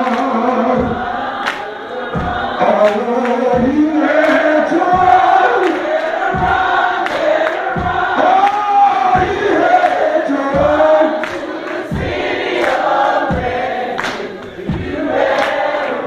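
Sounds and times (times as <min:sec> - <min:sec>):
gospel choir singing: 0:00.0 - 0:16.0
steady low beat: 0:00.0 - 0:16.0.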